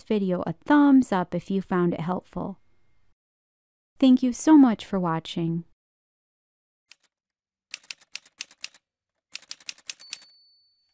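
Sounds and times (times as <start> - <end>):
typewriter keys clacking: 7.7 - 10.3.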